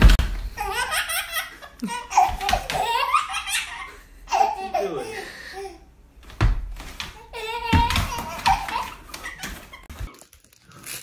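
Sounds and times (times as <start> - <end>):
baby laughing: 0.5 - 5.9, 7.2 - 10.0.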